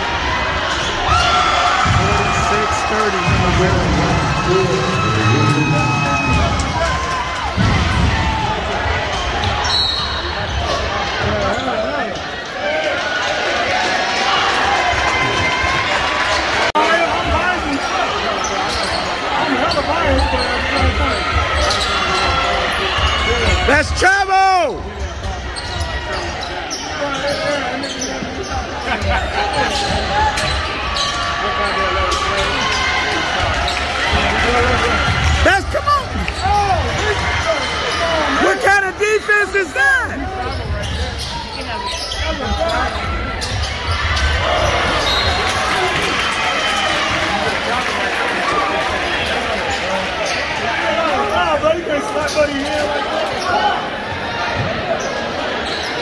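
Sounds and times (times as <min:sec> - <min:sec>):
crowd chatter: 0:00.0 - 0:56.0
sneakers squeaking: 0:00.5 - 0:03.8, 0:04.6 - 0:12.6, 0:15.3 - 0:23.7, 0:24.8 - 0:46.2, 0:52.0 - 0:56.0.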